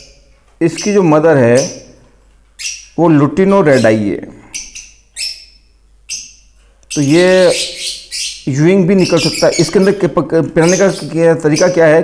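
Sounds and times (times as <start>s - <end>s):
bird chick harsh calls: 3.8s - 10.0s.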